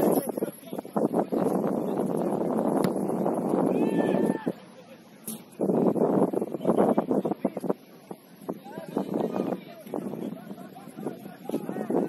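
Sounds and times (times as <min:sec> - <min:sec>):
wind on microphone: 0:00.0 - 0:04.6, 0:05.3 - 0:12.0
distant high shout: 0:03.6 - 0:04.8.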